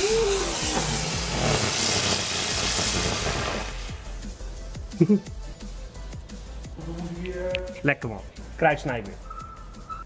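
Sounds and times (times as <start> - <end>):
firework hissing: 0.0 - 4.7.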